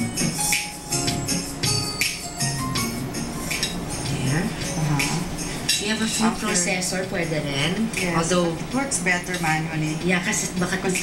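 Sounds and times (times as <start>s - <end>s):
faint background music: 0.0s - 11.0s
metal kitchen utensils clinking: 3.5s - 7.0s.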